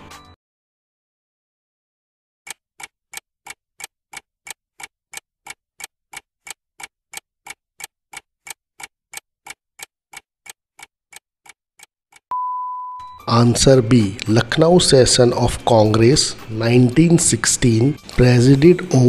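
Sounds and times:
clock ticking: 2.5s - 12.3s.

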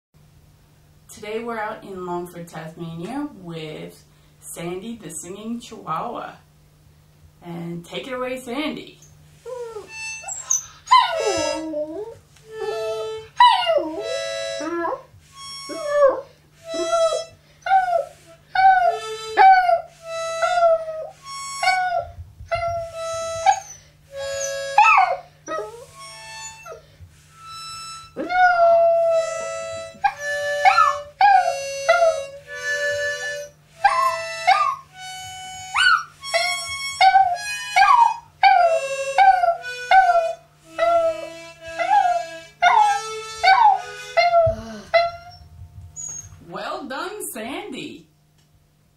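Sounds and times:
harmonica: 9.4s - 46.4s
dog howling and yipping: 9.5s - 15.1s, 15.7s - 23.7s, 24.4s - 25.9s, 28.2s - 32.3s, 33.8s - 34.9s, 35.7s - 45.4s.

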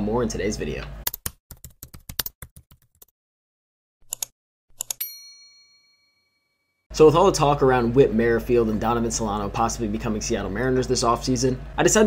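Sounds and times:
notification bell ding: 5.0s - 6.3s.

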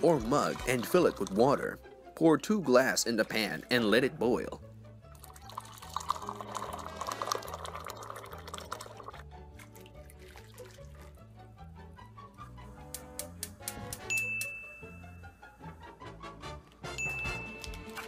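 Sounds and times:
water splashing into frying pan: 5.9s - 11.1s
background music with steady beat: 8.9s - 18.0s.

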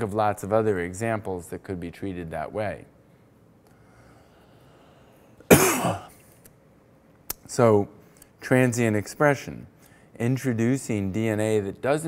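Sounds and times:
man coughing: 5.5s - 6.2s.

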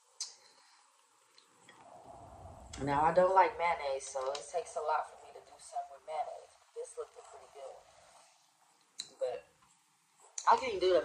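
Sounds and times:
woman speaking: 2.8s - 7.9s, 9.0s - 9.5s, 10.4s - 11.0s.

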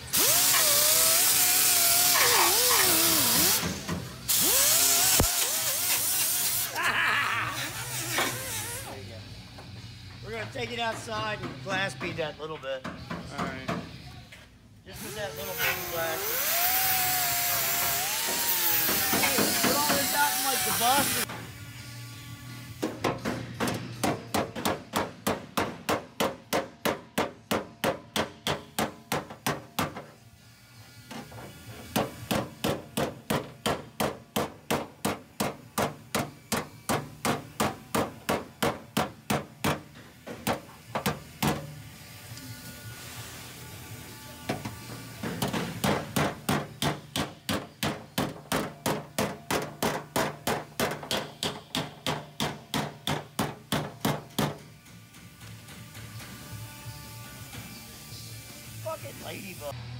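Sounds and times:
loud steady hiss: 57.2s - 59.8s.

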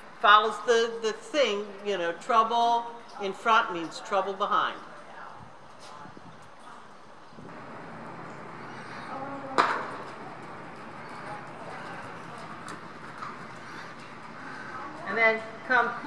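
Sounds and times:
horse hoofbeats on dirt: 7.5s - 16.0s.

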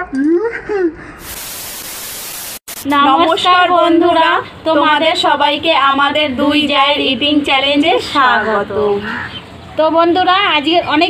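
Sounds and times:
static hiss: 1.2s - 3.0s.

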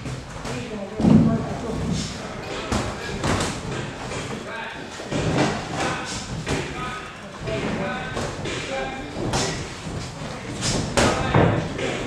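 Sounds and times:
voices around the ring: 0.4s - 12.0s.

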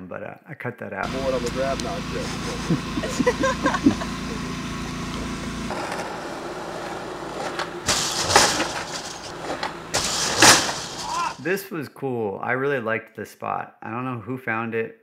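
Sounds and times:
steady low hum: 1.0s - 11.4s
skateboard scraping clatters: 5.2s - 11.4s
skateboard rolling on smooth floor: 5.7s - 11.4s.

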